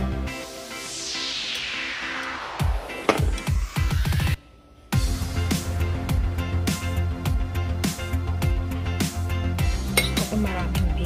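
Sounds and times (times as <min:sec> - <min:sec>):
background music with beat: 0:00.0 - 0:11.0
metal spoon clinking on pot: 0:09.9 - 0:10.3.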